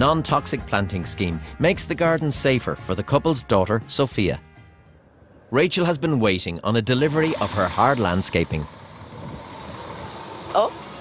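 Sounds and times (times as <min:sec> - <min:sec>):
truck engine and road noise: 0:04.6 - 0:11.0.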